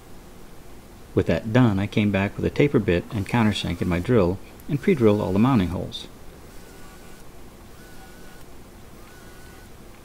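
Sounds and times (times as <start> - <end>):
faint cordless drill bursts: 3.2 - 9.8.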